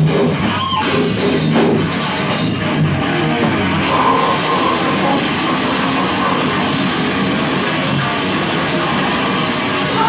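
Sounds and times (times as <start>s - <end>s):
rock band playing: 0.0s - 10.0s.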